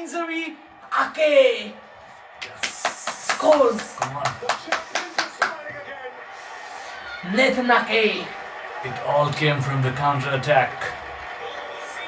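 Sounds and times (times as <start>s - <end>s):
sharp hand claps: 2.4s - 6.0s.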